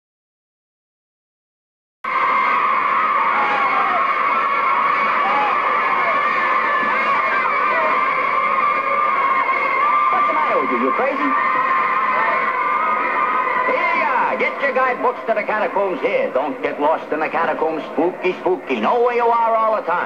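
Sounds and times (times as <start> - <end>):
children shouting: 2.1 - 15.0.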